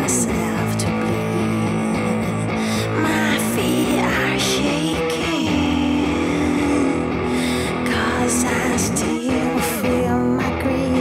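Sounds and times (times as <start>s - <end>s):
bass line: 0.0s - 11.0s
layered electric guitar: 0.0s - 11.0s.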